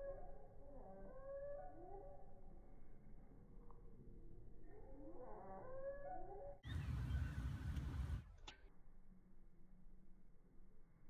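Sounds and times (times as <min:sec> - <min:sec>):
animal calls gliding in pitch: 0:00.0 - 0:02.5, 0:04.6 - 0:07.2.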